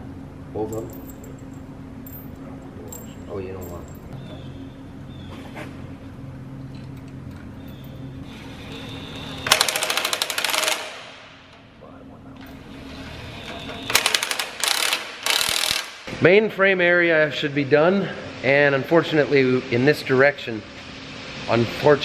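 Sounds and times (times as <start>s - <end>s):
steady low hum: 0.0s - 22.0s
impact wrench rattling: 9.4s - 11.0s, 13.9s - 16.0s.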